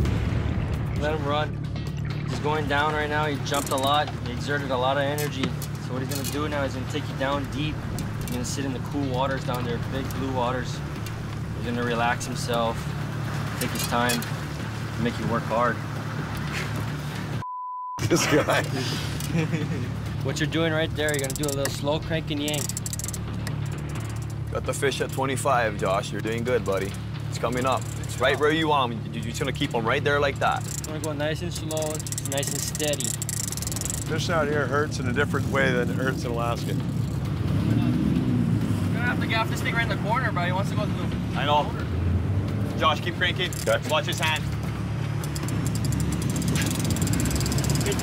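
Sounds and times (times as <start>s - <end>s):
boat engine droning: 0.0s - 17.4s, 18.0s - 48.0s
outboard motors running: 0.0s - 17.4s, 18.0s - 48.0s
censor bleep: 17.4s - 18.0s.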